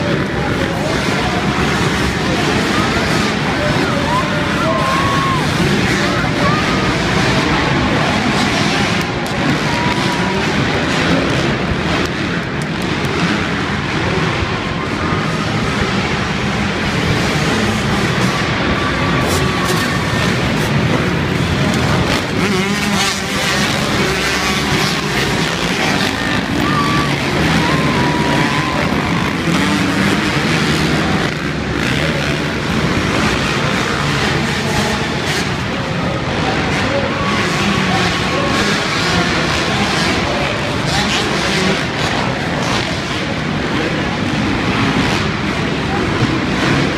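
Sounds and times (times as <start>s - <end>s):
motocross bike engines revving: 0.0s - 46.9s.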